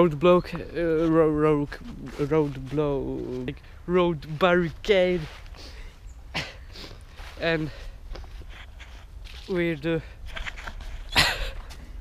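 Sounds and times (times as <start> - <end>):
rustling: 0.8 - 6.0, 6.8 - 12.0.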